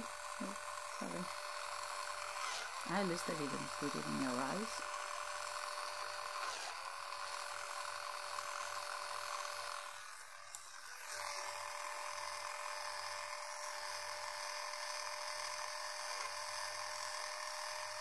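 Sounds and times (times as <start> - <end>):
electric cleansing brush buzzing: 0.0 - 18.0.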